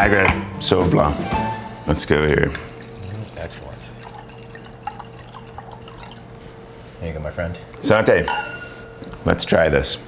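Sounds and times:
wine trickling into a glass: 0:02.3 - 0:06.4
small liquid splashes: 0:02.5 - 0:06.4.

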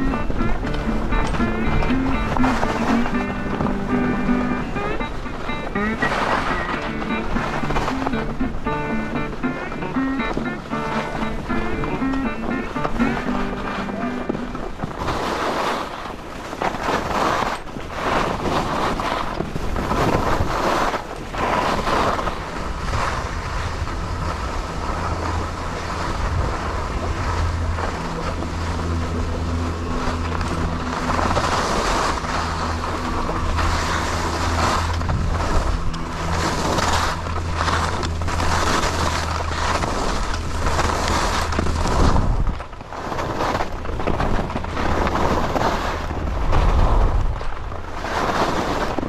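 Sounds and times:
skis scraping on snow: 0:00.0 - 0:49.0
wind rushing over microphone: 0:00.0 - 0:49.0
steady low hum: 0:21.8 - 0:48.0.

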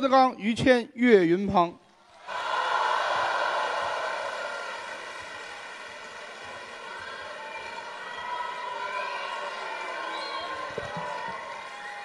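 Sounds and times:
audience applauding and cheering: 0:02.0 - 0:12.0.

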